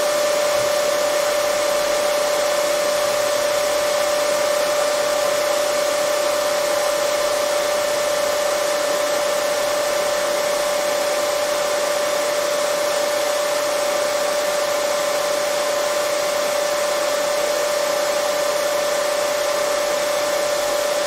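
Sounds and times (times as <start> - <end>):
hair dryer running: 0.0 - 21.0.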